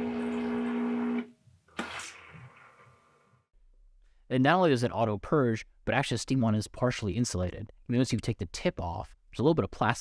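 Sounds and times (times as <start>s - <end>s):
pump droning with buzzing tone: 0.0s - 1.3s.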